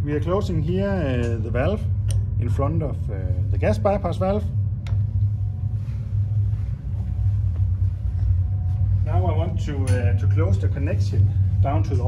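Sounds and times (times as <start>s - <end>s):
low machinery hum: 0.0s - 12.0s.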